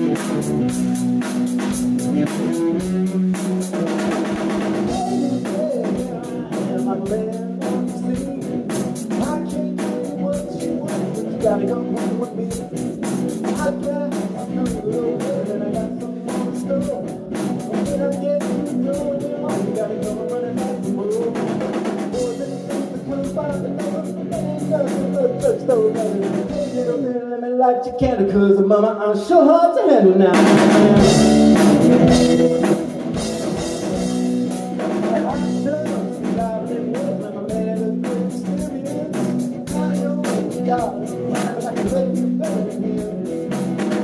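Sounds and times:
electric guitars sustained chords: 0.0 - 6.6, 30.4 - 36.1
drum kit steady beat: 0.0 - 27.0, 30.3 - 44.0
electric guitar riffing: 0.0 - 27.1, 30.0 - 44.0
bass guitar: 0.0 - 27.2, 30.2 - 44.0.

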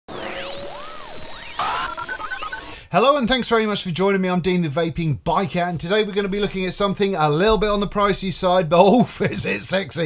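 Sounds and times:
swooping synthesized tones: 0.1 - 2.8.

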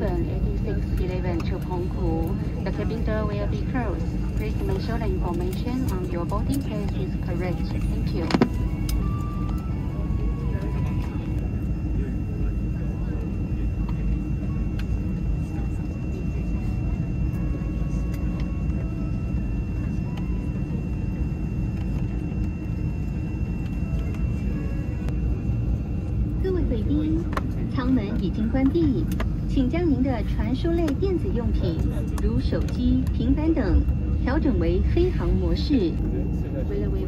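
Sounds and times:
airliner cabin rumble and whine: 0.0 - 37.0
voices: 0.0 - 37.0.

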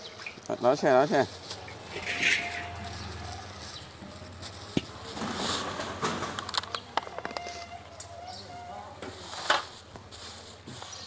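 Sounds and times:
plastic bag rustling and crinkling: 0.4 - 8.0, 9.0 - 11.0.

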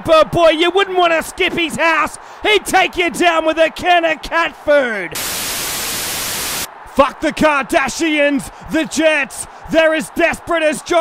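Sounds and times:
static hiss: 5.2 - 6.7.

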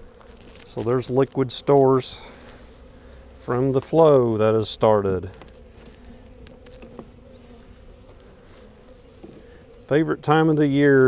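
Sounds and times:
honey bees buzzing: 0.0 - 11.0.

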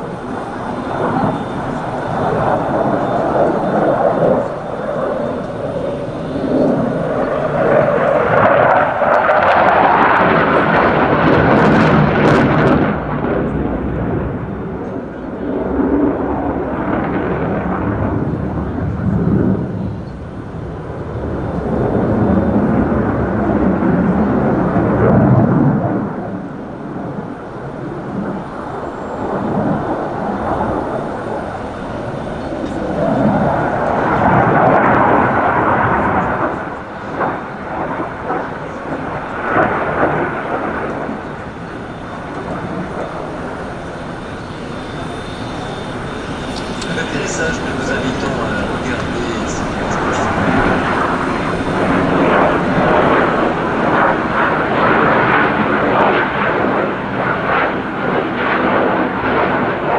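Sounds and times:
fighter jet rumble: 0.0 - 59.9
jet engine crackle: 0.0 - 59.9.

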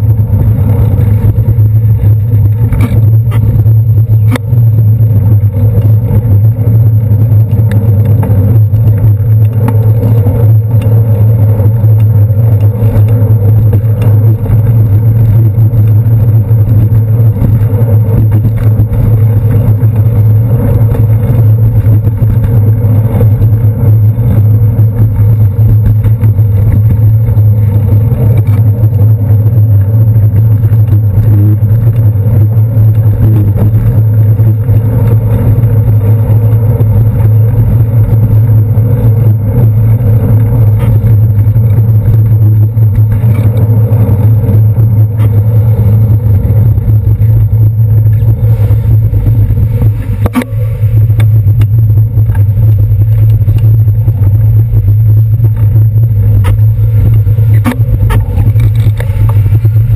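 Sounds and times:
cars and buses in traffic: 0.0 - 59.9
road vibration rumble: 0.0 - 59.9.

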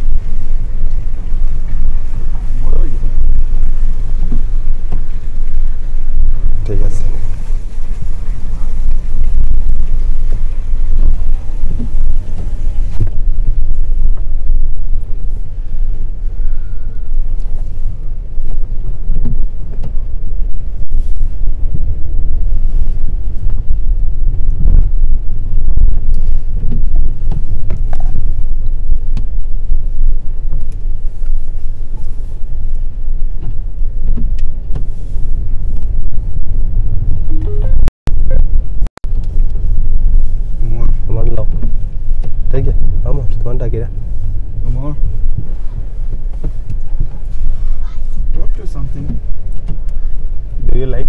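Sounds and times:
car road and engine rumble: 0.0 - 51.0.

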